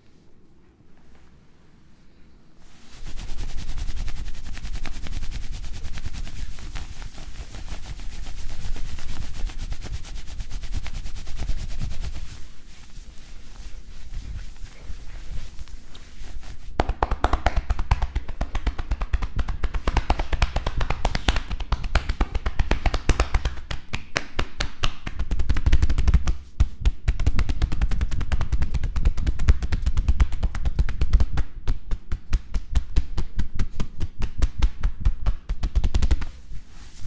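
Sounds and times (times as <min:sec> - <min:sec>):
hands patting and slapping back: 0:14.1 - 0:36.6.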